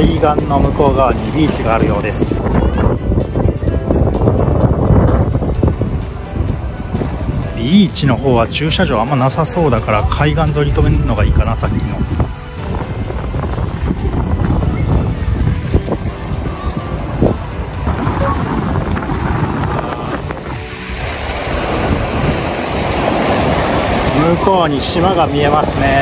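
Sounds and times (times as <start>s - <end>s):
waves washing up beach: 0.0s - 26.0s
wind buffeting microphone: 0.0s - 26.0s.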